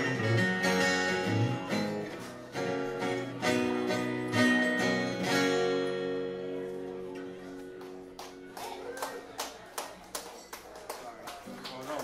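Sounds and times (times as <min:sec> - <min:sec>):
acoustic guitar chord: 0:00.0 - 0:08.1
audience clapping: 0:07.5 - 0:12.0.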